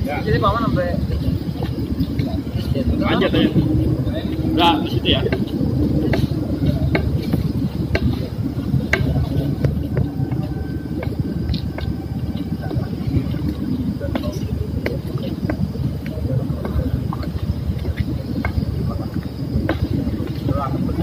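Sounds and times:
people talking quietly: 0.0 - 21.0
steady low rumble: 0.0 - 21.0.

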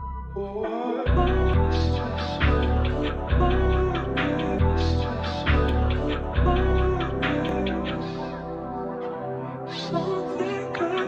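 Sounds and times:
low bass: 0.0 - 8.9.

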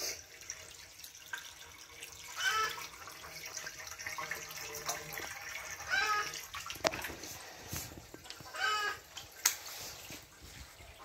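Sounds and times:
water sloshing and trickling: 0.0 - 11.0
high-pitched animal calls: 2.4 - 2.8, 5.8 - 6.4, 8.5 - 9.0.

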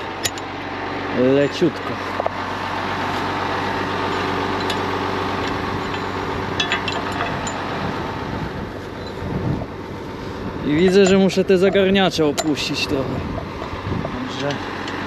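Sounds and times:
tractor diesel engine running: 0.0 - 15.0
light metallic clicks: 10.9 - 12.7.

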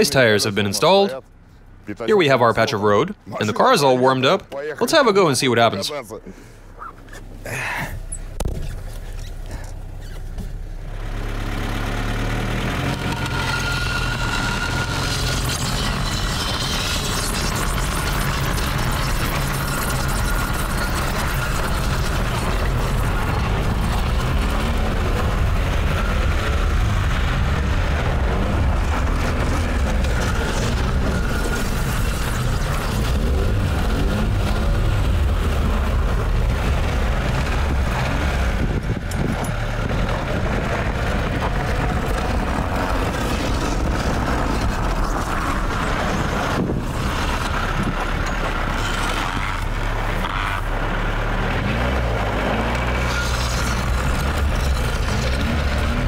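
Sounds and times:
car engine revving: 3.4 - 56.0
wheels spinning on snow: 8.0 - 56.0.

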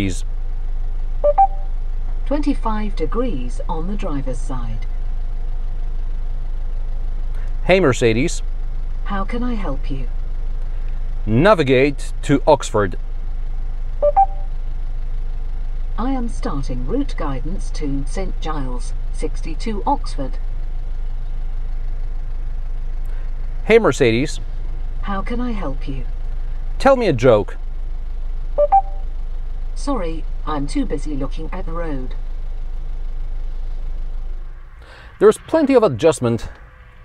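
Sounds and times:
car engine hum: 0.0 - 37.0
two-note electronic chime: 1.3 - 1.7, 14.0 - 14.5, 28.6 - 29.0
car cabin engine rumble: 29.8 - 37.0.

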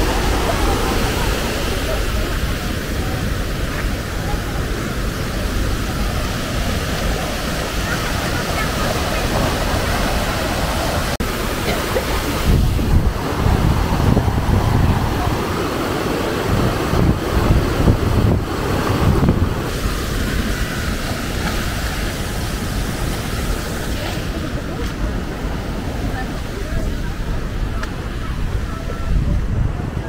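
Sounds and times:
creek rushing over rapids: 0.0 - 30.0
wind buffeting microphone: 0.0 - 30.0.

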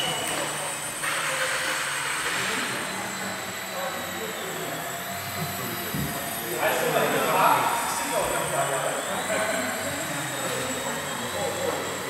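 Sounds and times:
model plane propellers whirring: 0.0 - 12.0.

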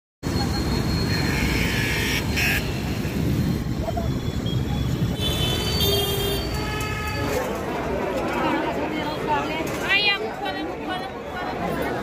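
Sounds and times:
motorbikes: 0.2 - 12.0
traffic rumble: 0.2 - 12.0
chatter of many voices: 7.0 - 12.0.

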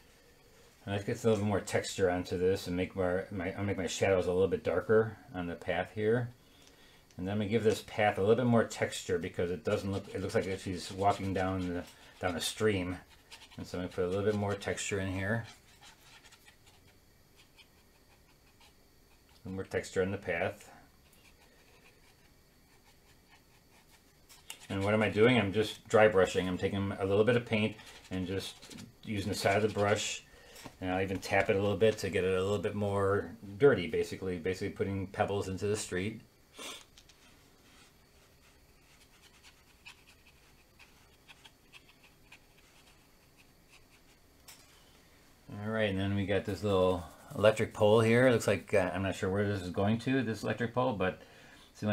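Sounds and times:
dry brush scratching paper: 7.6 - 20.4, 21.0 - 30.2, 37.1 - 44.2.

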